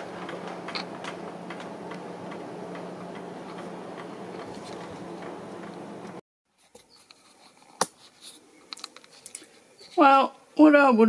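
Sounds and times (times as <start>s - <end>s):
steady noise: 0.0s - 6.2s.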